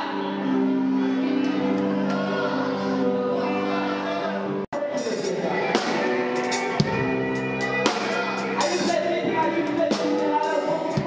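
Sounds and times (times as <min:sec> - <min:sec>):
worship band playing: 0:00.0 - 0:11.0.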